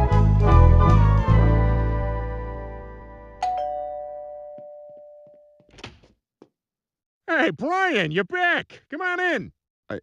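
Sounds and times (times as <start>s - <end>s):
music: 0.0s - 3.6s
two-note doorbell chime: 3.4s - 5.6s.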